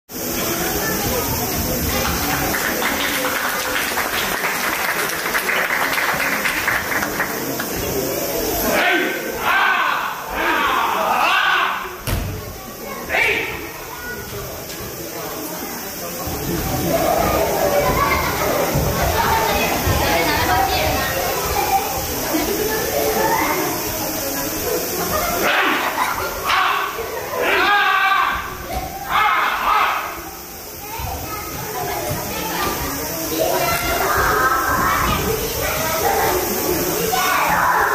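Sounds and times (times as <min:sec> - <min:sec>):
crowd murmur in a large hall: 0:00.1 - 0:37.9
sharp thud: 0:12.0 - 0:12.4.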